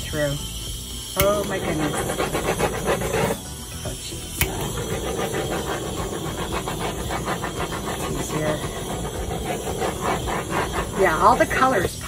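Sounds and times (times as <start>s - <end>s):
torch flame hissing: 0.0s - 12.0s.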